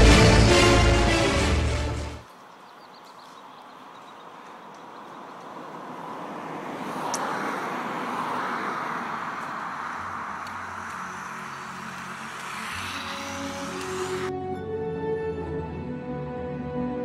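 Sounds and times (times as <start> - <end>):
roller skis rolling on asphalt: 2.2 - 14.3
ski pole tip clicking on asphalt: 7.0 - 7.4, 9.3 - 9.7, 10.4 - 14.3.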